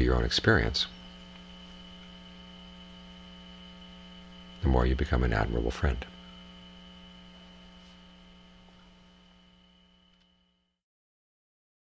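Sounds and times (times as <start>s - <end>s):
faint high whine: 0.0s - 10.8s
low electrical hum: 0.0s - 10.8s.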